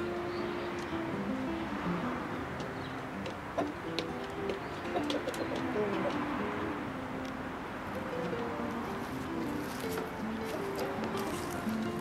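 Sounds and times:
soft plucked background music: 0.0s - 12.0s.

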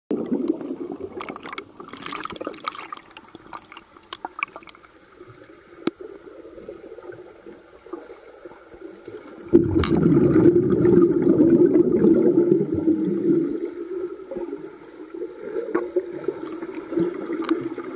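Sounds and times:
muffled underwater bubbling: 0.1s - 17.9s.

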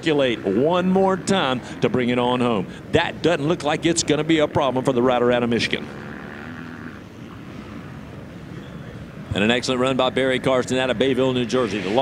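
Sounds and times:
motocross bike engines droning: 0.0s - 12.0s.

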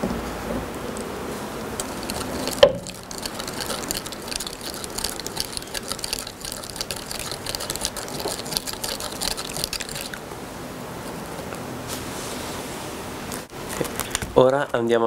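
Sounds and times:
plastic spoon scraping a cup: 1.8s - 10.2s.

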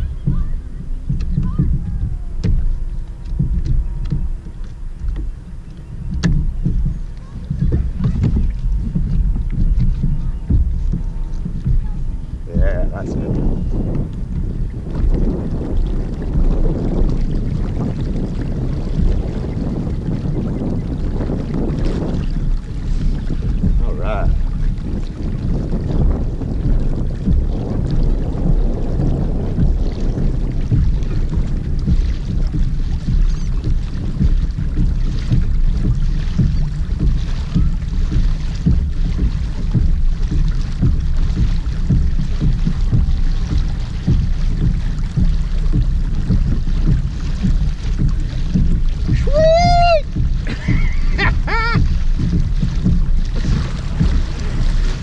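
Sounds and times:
water washing along kayak hull: 0.0s - 55.0s
wind buffeting microphone: 0.0s - 55.0s.

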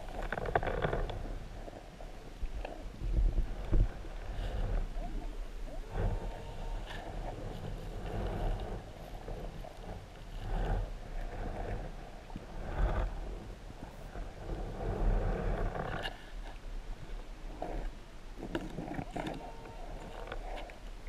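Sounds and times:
underwater rumble and swishing: 0.0s - 21.0s.

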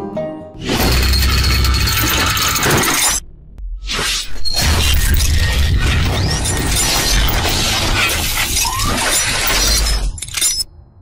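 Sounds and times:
deep bass rumble: 1.7s - 3.9s.

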